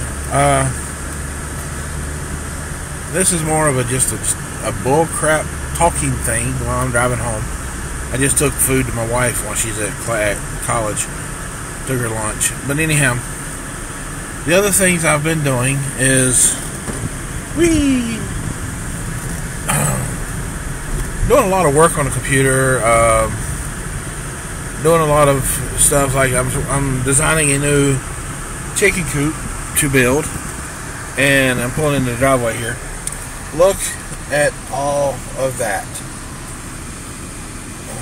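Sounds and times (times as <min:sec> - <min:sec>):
car engine and road rumble: 0:00.0 - 0:38.0.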